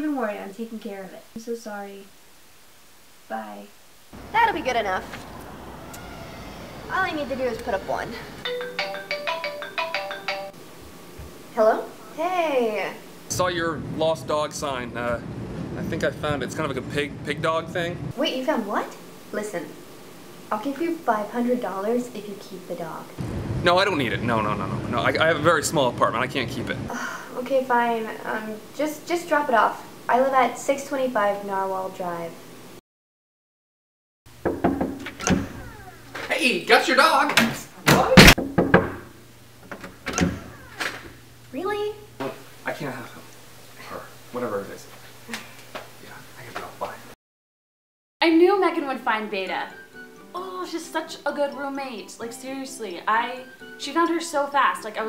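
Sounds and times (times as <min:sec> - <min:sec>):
door creaking open: 0:05.0 - 0:07.3, 0:34.5 - 0:36.4, 0:39.6 - 0:41.2
phone ringtone chiming melody: 0:08.5 - 0:10.6
knocks on a door: 0:34.4 - 0:35.6, 0:37.9 - 0:39.1.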